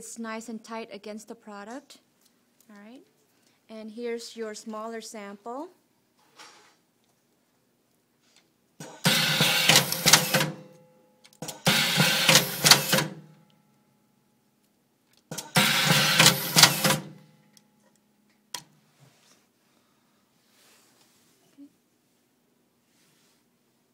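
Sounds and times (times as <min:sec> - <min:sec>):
tying machine mechanical noise: 0:08.8 - 0:10.7, 0:11.3 - 0:13.3, 0:15.2 - 0:17.2
sharp machine click: 0:08.8 - 0:10.8, 0:11.4 - 0:13.3, 0:15.3 - 0:17.2.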